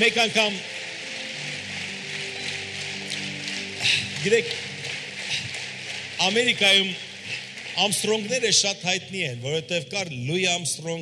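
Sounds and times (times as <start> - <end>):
sustained musical chords: 0.0 - 9.1
audience applauding: 0.0 - 9.2.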